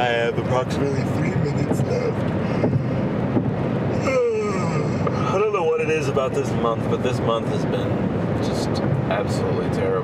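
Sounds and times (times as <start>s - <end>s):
man talking: 0.0s - 2.8s, 4.0s - 10.0s
car road and engine noise: 0.0s - 10.0s.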